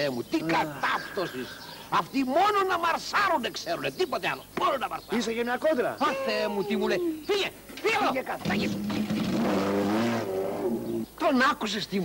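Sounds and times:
motorcycle engine revving: 8.4s - 10.6s.

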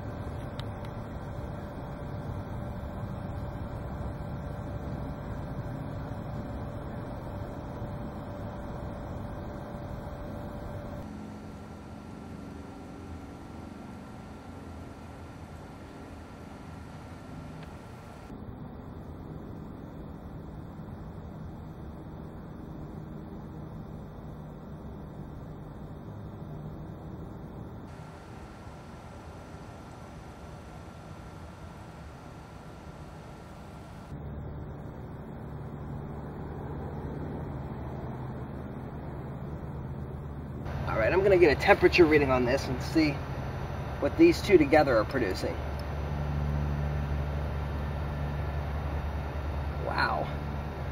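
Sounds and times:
faint low rumble: 0.0s - 50.9s
outdoor background noise: 0.0s - 50.9s.

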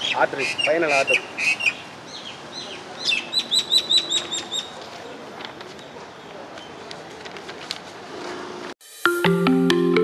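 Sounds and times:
small bird calling: 0.0s - 5.2s.

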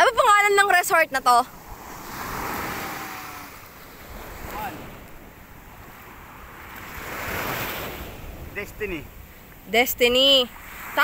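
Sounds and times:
small waves washing up beach: 0.0s - 11.0s.

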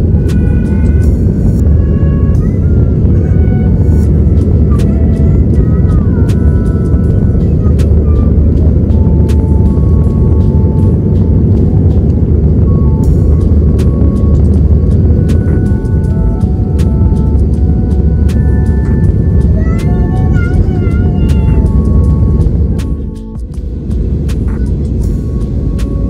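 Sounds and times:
jet engines roaring: 0.0s - 26.0s.

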